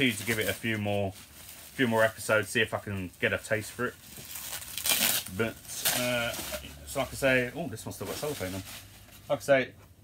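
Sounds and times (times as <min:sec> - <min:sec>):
plastic packaging crinkling: 0:00.0 - 0:09.4.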